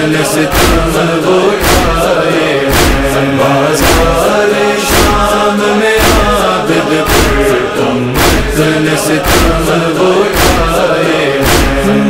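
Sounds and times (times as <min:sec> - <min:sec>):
male chorus chanting: 0:00.0 - 0:12.0
deep thumping beat: 0:00.4 - 0:12.0.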